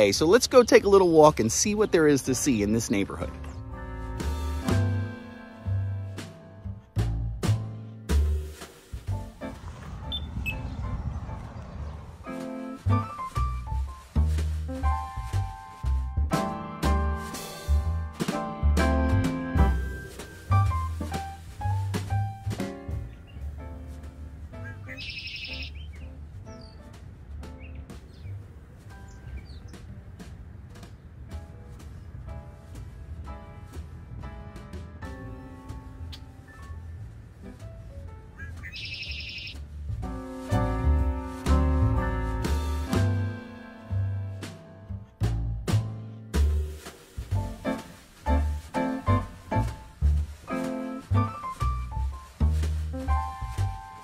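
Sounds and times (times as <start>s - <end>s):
faint background music: 0.0s - 10.2s, 12.4s - 54.0s
low steady rumble: 8.2s - 16.4s
blackbird singing: 10.1s - 10.6s, 24.6s - 26.8s, 38.3s - 39.6s.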